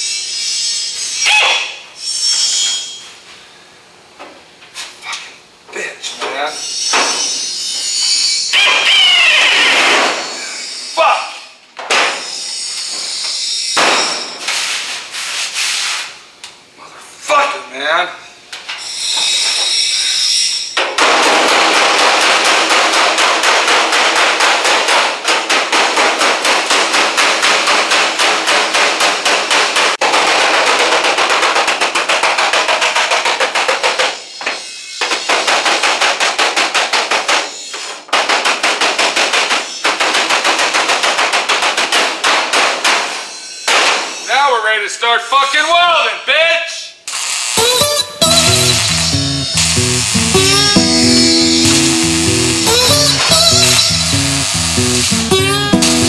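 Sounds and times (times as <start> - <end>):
knocks and clatter: 20.8 - 44.2
power tool hammering rattle: 20.8 - 44.3, 47.1 - 56.0.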